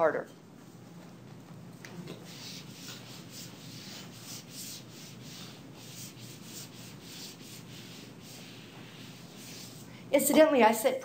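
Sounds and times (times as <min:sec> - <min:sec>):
marker scratching on whiteboard: 0:02.2 - 0:09.9.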